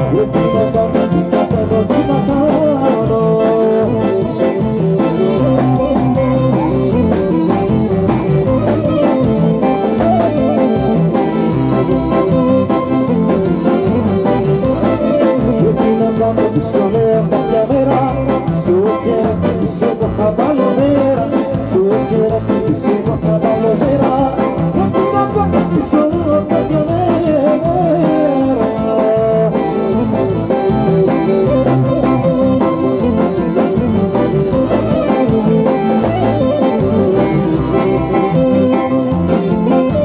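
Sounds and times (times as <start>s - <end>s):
person singing: 0.0s - 40.0s.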